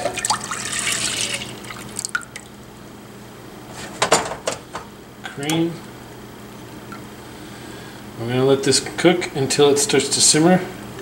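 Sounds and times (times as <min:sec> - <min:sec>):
milk pouring into a saucepan: 0:00.0 - 0:02.5.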